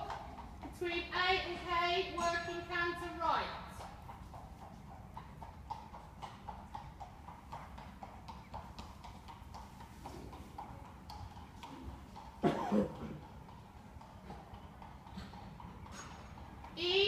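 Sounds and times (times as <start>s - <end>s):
horse hoofbeats on sand: 0.0s - 16.9s.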